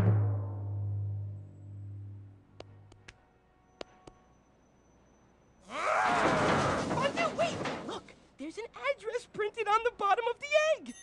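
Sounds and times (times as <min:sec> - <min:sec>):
low timpani rumble: 0:00.0 - 0:02.4.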